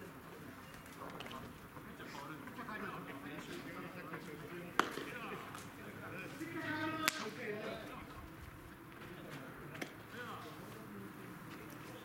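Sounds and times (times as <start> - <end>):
baseball smacking into leather glove: 4.8 - 5.1.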